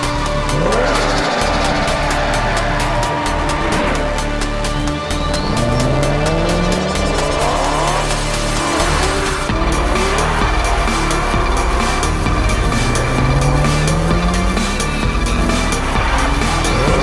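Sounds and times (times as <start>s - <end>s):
electronic music with steady beat: 0.0s - 17.0s
race car engines revving: 0.0s - 17.0s.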